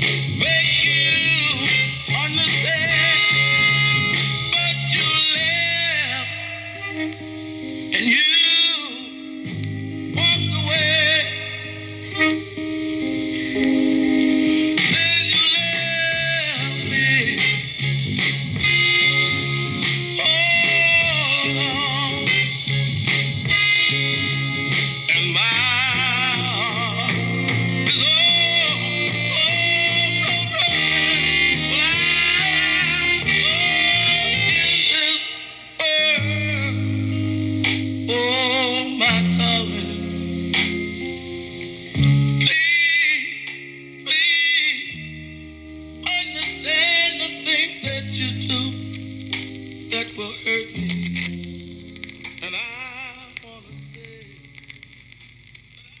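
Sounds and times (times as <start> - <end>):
soul record playing: 0.0 - 56.0
vinyl crackle and ticks: 6.8 - 56.0
soul singer holding a vibrato note: 23.5 - 51.0.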